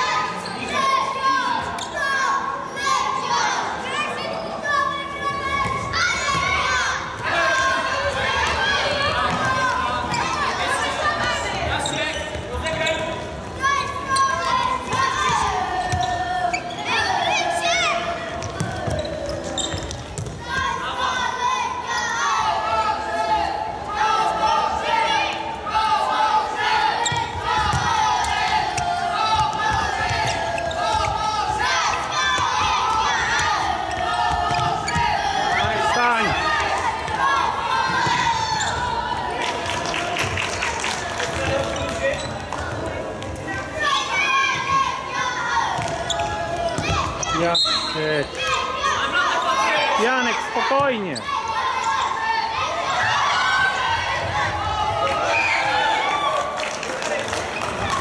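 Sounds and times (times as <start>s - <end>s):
shoes squeaking: 10.0s - 17.1s, 18.4s - 20.7s, 27.0s - 36.6s, 41.4s - 43.4s, 45.8s - 49.7s
ball kicked and bouncing: 19.7s - 20.4s.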